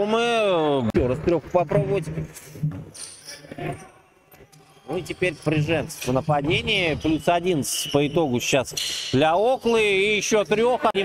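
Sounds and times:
indoor basketball game: 2.4s - 10.8s
men talking: 4.6s - 11.0s.

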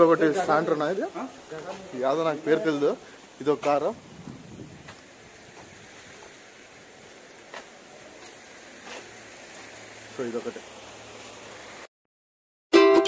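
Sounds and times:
wind hiss on microphone: 0.0s - 11.9s.

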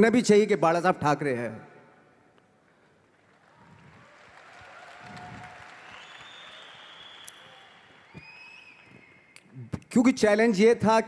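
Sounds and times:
audience applause: 3.1s - 9.2s.

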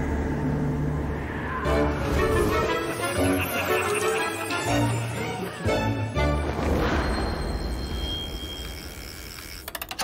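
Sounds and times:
sharp ratchet-like mechanical clicks: 8.7s - 10.0s.

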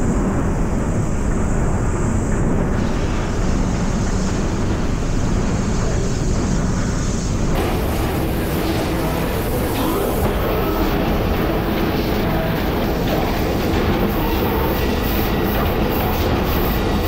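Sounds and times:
laser cutting machine running: 0.6s - 17.0s.

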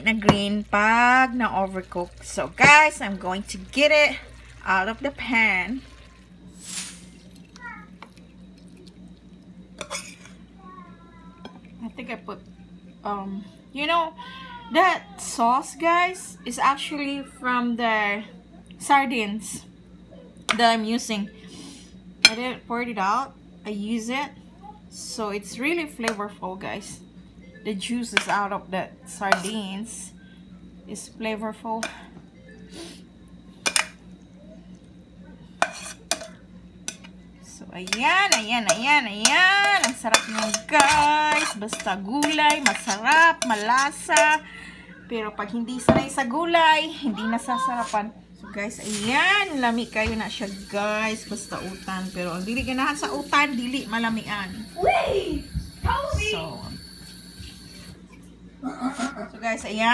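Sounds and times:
steady low hum: 0.0s - 59.9s
spatula stirring in metal pan: 9.8s - 10.3s, 35.6s - 37.1s, 37.8s - 44.4s
utensil clinking on ceramic plate: 37.9s - 44.4s.

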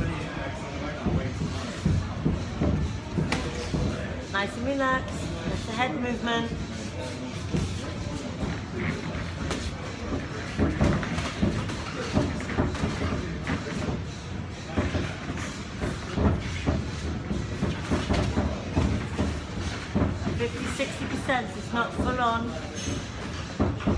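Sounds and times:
boxing gloves punching thuds: 8.4s - 14.0s.

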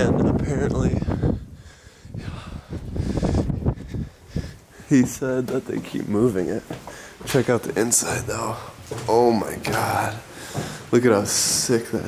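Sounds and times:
wind on microphone: 0.0s - 5.2s
rustling of person moving: 0.0s - 12.0s
footsteps on metal stairs: 3.5s - 12.0s.

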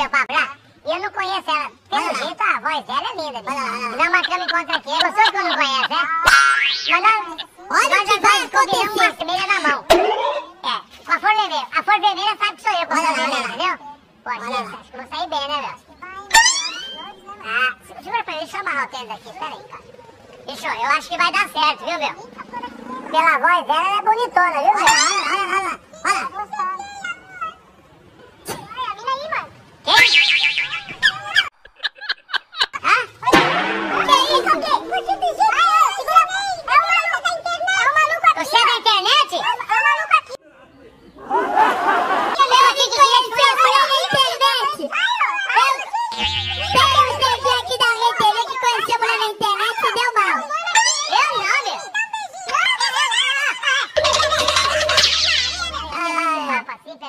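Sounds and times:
squeaky meow-like calls: 16.3s - 17.2s
steady low hum: 46.2s - 48.0s.

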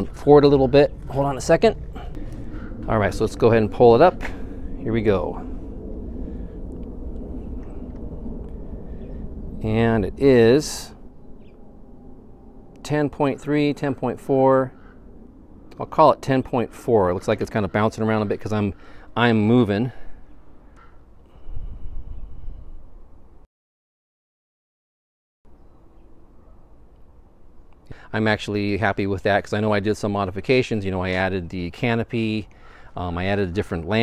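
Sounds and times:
outdoor background rumble: 0.0s - 23.4s, 25.5s - 34.0s.

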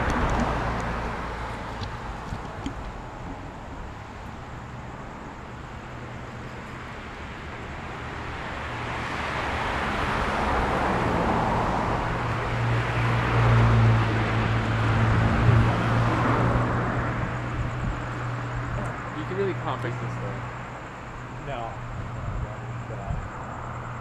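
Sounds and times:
vehicle passing on road: 0.0s - 24.0s.

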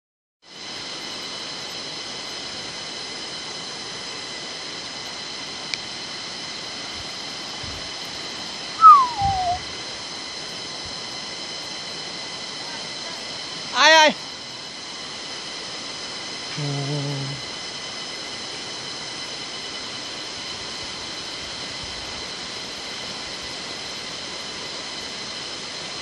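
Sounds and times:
high-pitched drone: 8.8s - 9.7s.

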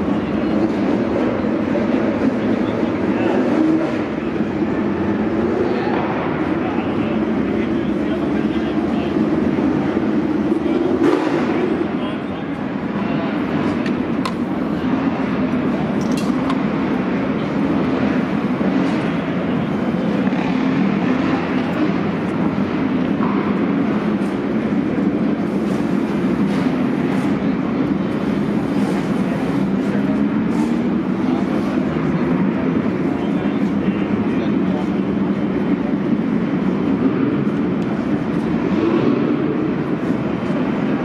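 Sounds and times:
people chattering: 0.0s - 41.0s
race car engines droning: 0.0s - 41.0s.

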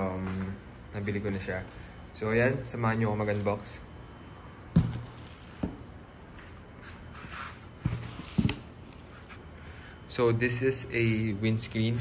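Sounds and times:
dull knocks on cardboard box: 4.7s - 5.8s
plastic packing rustle: 7.9s - 9.4s.

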